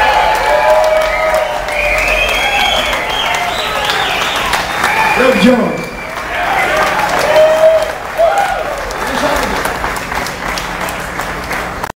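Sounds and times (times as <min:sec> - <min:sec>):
audience applauding: 0:00.0 - 0:11.9.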